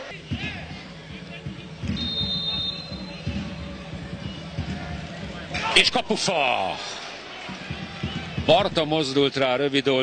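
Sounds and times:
stadium crowd noise: 0.0 - 10.0
referee's whistle: 1.9 - 3.4.

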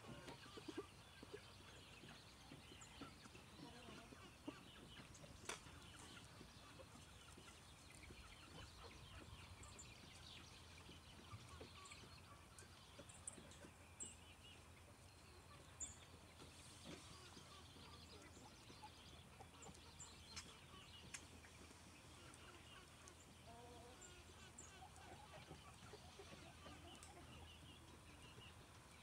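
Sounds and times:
roosters clucking: 0.0 - 14.2, 15.5 - 29.0.

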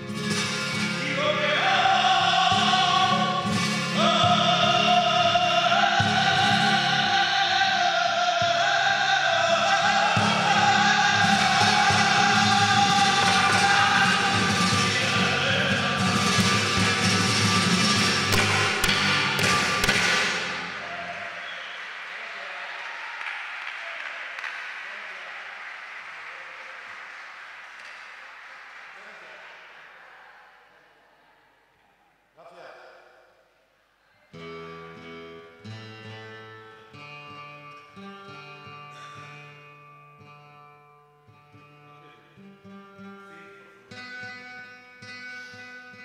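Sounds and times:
flamenco singing with guitar: 0.0 - 21.8
audience applause: 19.2 - 30.6.

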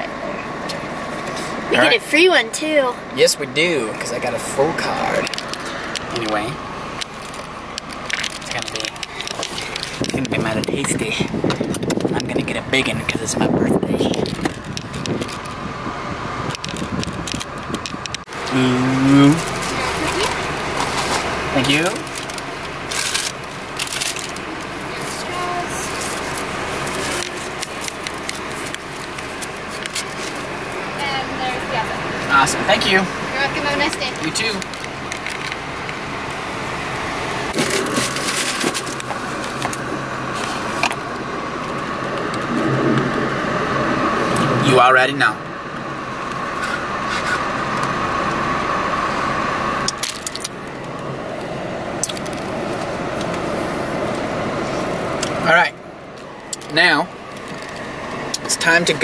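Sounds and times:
road and engine noise in car cabin: 0.0 - 59.0
clicking and rustling handling: 7.0 - 10.9, 56.2 - 58.5.

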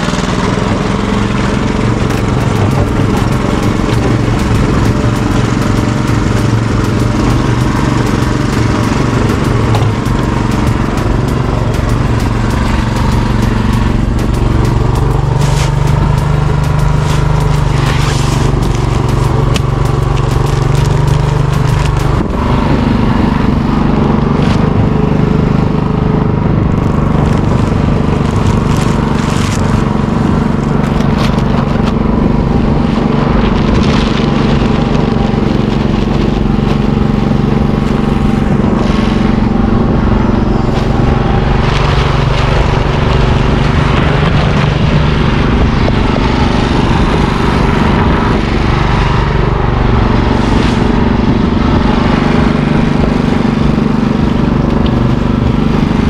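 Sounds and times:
knocks and scrapes: 0.0 - 25.0
small gas engine running: 0.0 - 56.0.

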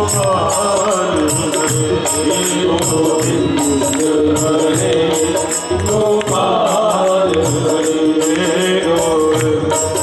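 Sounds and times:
harmonium sustained tones: 0.0 - 10.0
men singing devotional song: 0.0 - 10.0
steady percussion beat: 0.0 - 10.0.

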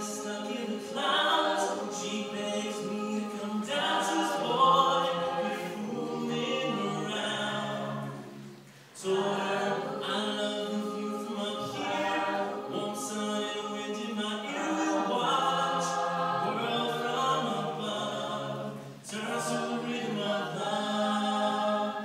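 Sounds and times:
chorus singing a cappella: 0.0 - 22.0.

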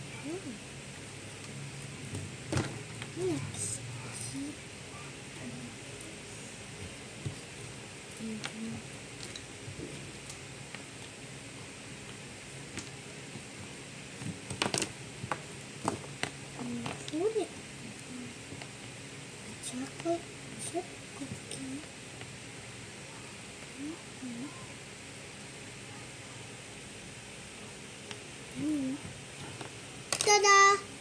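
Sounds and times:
faint person's voice: 28.6 - 29.1.

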